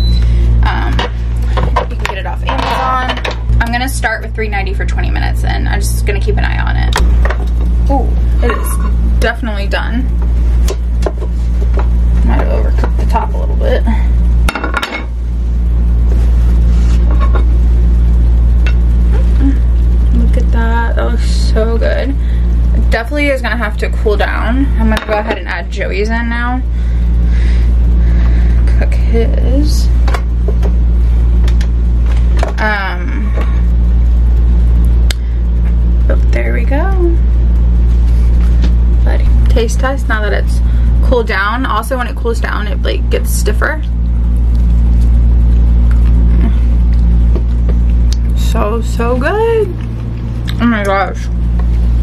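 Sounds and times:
steady low hum: 0.0 - 52.0
spatula scraping air fryer basket: 0.7 - 6.8, 7.6 - 13.8.

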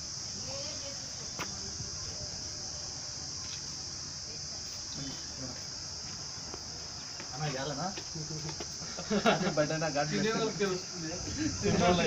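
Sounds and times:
insect chorus buzzing: 0.0 - 12.0.

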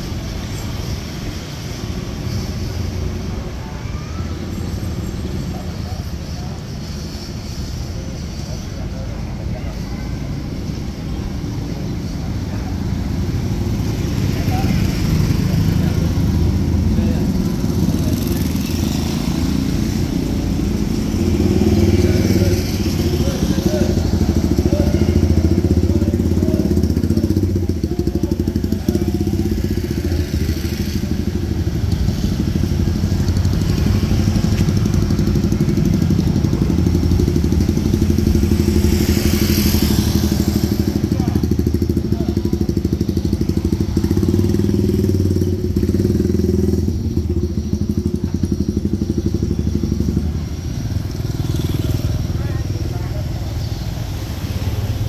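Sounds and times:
traffic engine hum: 0.0 - 55.0
motorcycle passing close: 4.5 - 55.0.

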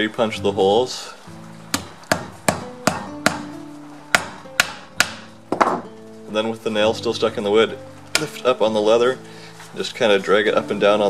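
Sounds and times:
hammer tapping nail: 4.1 - 5.8.

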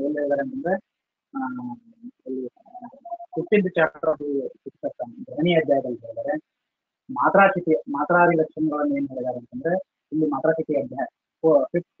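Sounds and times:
man speaking over video call: 0.0 - 12.0.

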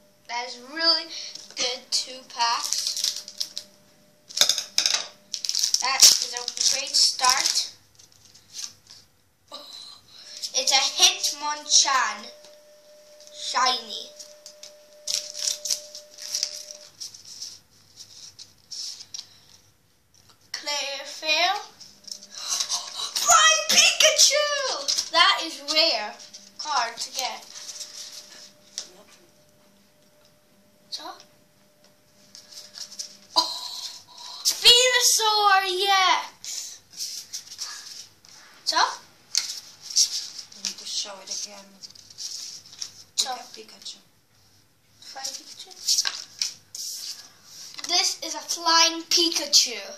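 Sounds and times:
child's voice: 0.3 - 2.9, 5.8 - 7.8, 9.5 - 12.4, 13.4 - 14.1, 20.6 - 21.8, 22.5 - 27.5, 30.9 - 31.3, 33.4 - 36.8, 38.7 - 39.0, 40.6 - 41.8, 43.2 - 44.0, 45.0 - 45.9, 47.8 - 49.9
trading cards rustling: 2.4 - 4.6, 5.2 - 9.0, 12.4 - 19.7, 21.6 - 29.0, 32.2 - 34.0
child humming: 33.3 - 34.5.

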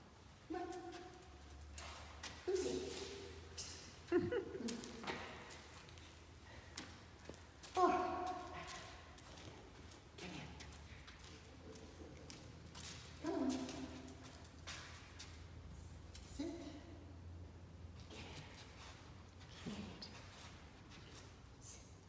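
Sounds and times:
person speaking short words: 0.5 - 1.2, 2.4 - 3.3.

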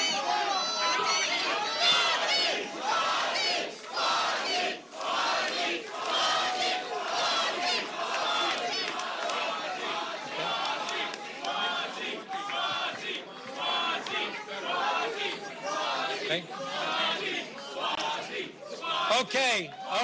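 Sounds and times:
crowd cheering and shouting: 0.0 - 20.0
loud shouts: 0.0 - 20.0.

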